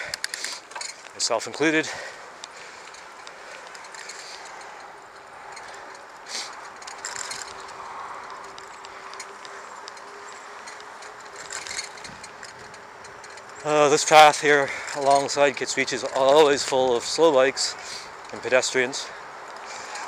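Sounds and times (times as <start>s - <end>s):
bicycle tyres rolling hiss: 0.0s - 20.0s.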